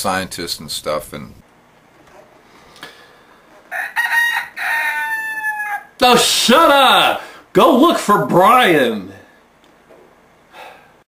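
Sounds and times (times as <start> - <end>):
rooster crowing: 3.7 - 6.0.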